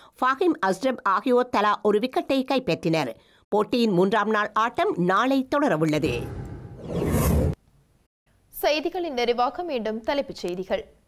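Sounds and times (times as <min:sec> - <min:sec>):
woman speaking: 0:00.2 - 0:06.3
graphics transition whoosh: 0:06.0 - 0:07.6.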